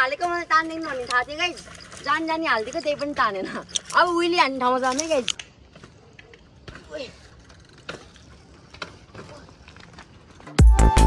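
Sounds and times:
bike clicks: 0.0s - 10.6s
bike tyres rolling on dirt: 0.0s - 10.6s
electronic music with heavy beat: 10.6s - 11.0s.

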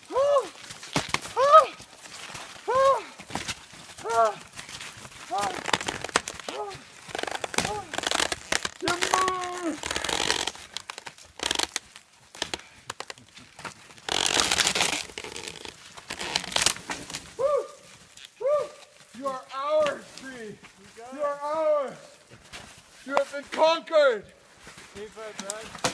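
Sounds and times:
people shouting and whooping: 0.0s - 0.6s, 1.4s - 1.8s, 2.7s - 3.2s, 17.4s - 18.9s
wood cracking: 0.0s - 20.3s, 25.2s - 25.9s
branches snapping and crackling: 0.0s - 20.8s, 24.6s - 25.9s
tree crashing down: 5.3s - 10.8s.

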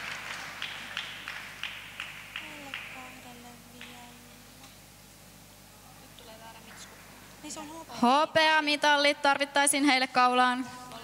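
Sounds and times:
audience applause: 0.0s - 3.2s.

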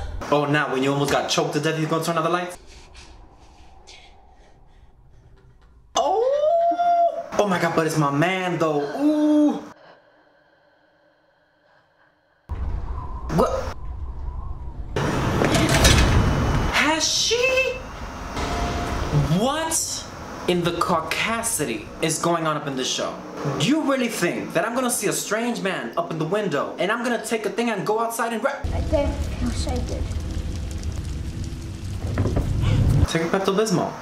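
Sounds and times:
low rumbling drone: 2.5s - 6.2s, 17.8s - 22.1s, 28.6s - 33.1s
low rumble: 2.6s - 6.0s, 12.5s - 16.8s, 28.7s - 33.1s
loud burst of noise with crackles: 28.7s - 33.1s.

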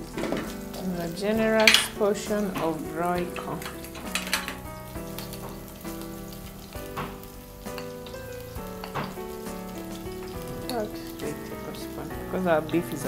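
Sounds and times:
spices sizzling in hot oil: 0.0s - 13.0s
metal spoon clinking: 2.6s - 4.6s, 7.6s - 9.2s.

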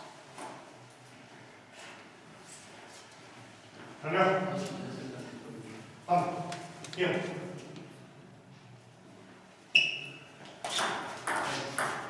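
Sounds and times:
table tennis ball hits: 10.6s - 12.0s.

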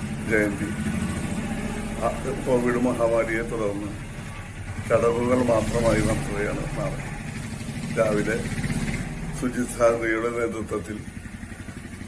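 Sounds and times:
engine idling: 0.0s - 12.0s
man talking: 0.2s - 0.8s, 2.0s - 4.0s, 4.8s - 7.1s, 7.9s - 8.5s, 9.4s - 11.1s.

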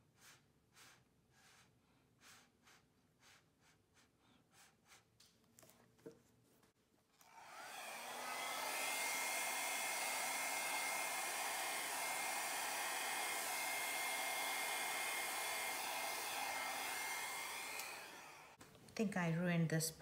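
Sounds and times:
hair dryer running: 7.2s - 18.6s.

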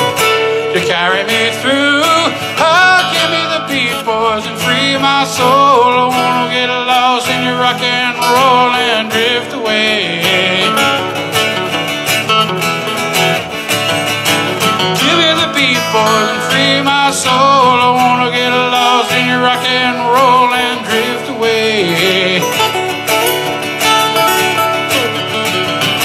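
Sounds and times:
acoustic guitars strummed and picked: 0.0s - 26.0s.

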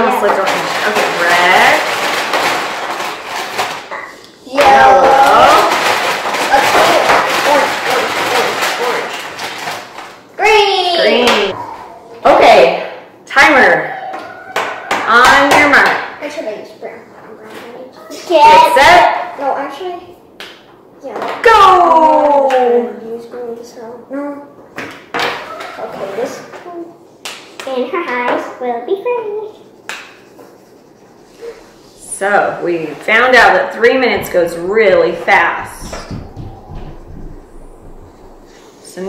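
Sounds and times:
woman and children talking: 10.4s - 12.5s.

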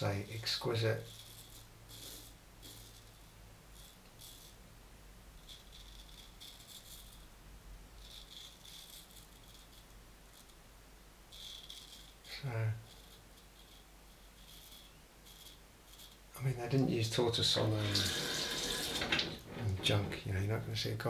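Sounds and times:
razor scraping stubble: 1.0s - 4.6s, 5.4s - 7.3s, 11.4s - 20.0s.

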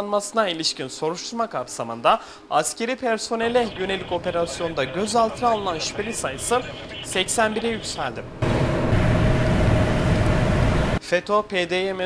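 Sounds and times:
faint constant hum: 0.0s - 12.0s
car road and engine noise: 3.5s - 11.0s.

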